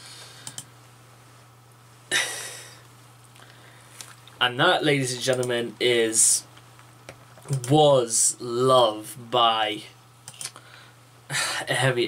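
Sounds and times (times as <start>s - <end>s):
steady low hum: 0.0s - 12.0s
person sighing: 2.1s - 2.8s.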